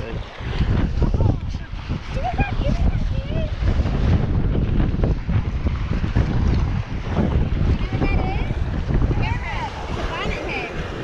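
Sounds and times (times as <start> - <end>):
surf washing: 0.0 - 11.0
wind buffeting microphone: 0.0 - 11.0.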